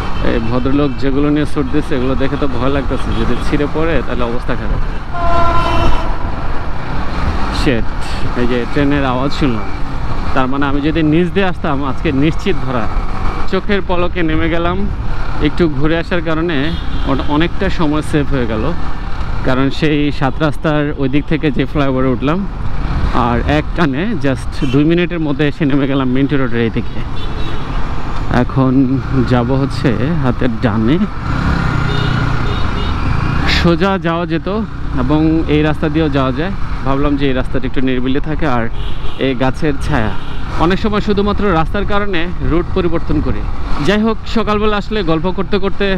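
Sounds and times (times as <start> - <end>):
road and wind noise: 0.0 - 45.9
motorcycle engine: 4.9 - 11.0, 27.2 - 35.6
train horn blast: 5.1 - 6.6.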